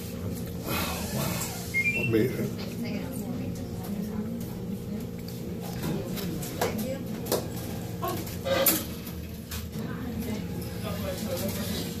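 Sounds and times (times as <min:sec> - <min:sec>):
person chewing: 0:00.2 - 0:02.0.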